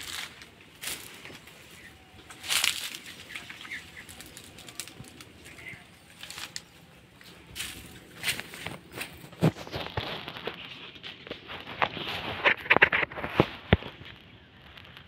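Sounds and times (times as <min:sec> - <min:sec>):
footsteps in dry leaves: 0:00.0 - 0:15.0.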